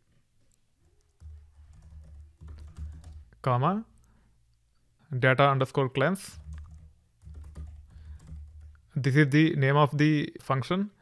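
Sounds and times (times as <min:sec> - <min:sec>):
quiet typing on keyboard: 0:00.5 - 0:04.2, 0:06.2 - 0:09.0.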